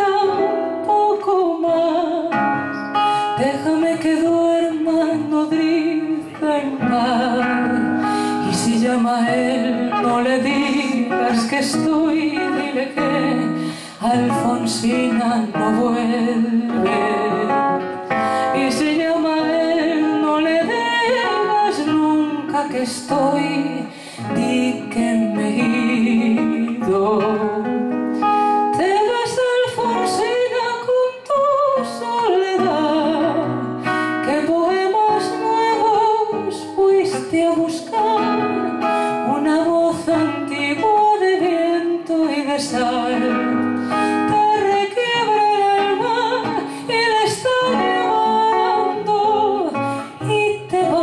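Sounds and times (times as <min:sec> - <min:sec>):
acoustic guitar plucked and strummed: 0:00.0 - 0:51.0
woman singing: 0:00.0 - 0:51.0
woman singing long notes: 0:03.4 - 0:27.8.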